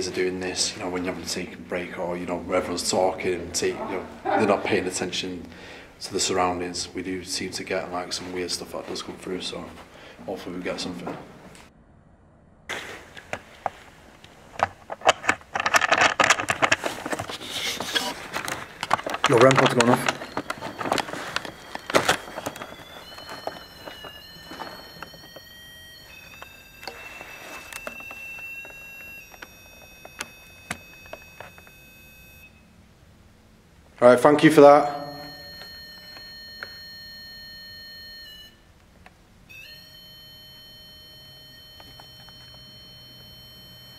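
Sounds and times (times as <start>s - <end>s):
low voices: 0.0s - 11.5s
clicks and knocks: 14.2s - 25.5s
electronic sensor alarm tone: 19.2s - 32.7s, 34.7s - 38.7s, 39.5s - 43.9s.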